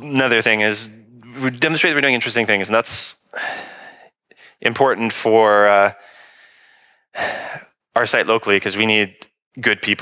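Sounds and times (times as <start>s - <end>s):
man breathing: 3.3s - 4.6s, 6.0s - 7.7s.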